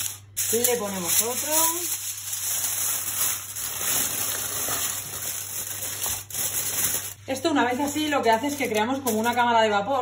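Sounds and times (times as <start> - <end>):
aluminium foil crinkling: 0.0 - 9.6.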